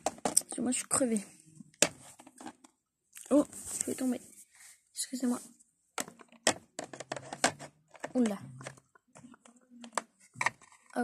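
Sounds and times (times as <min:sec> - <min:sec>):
plastic toys clicking and knocking: 0:00.0 - 0:00.6, 0:06.0 - 0:11.0.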